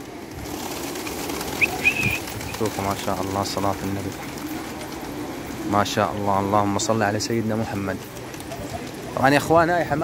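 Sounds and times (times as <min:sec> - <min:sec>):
pigeon wings flapping: 0:00.0 - 0:06.0, 0:07.5 - 0:09.5.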